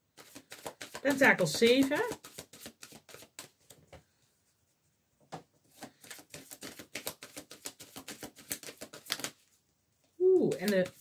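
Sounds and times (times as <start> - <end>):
cards clicking: 6.0 - 9.4.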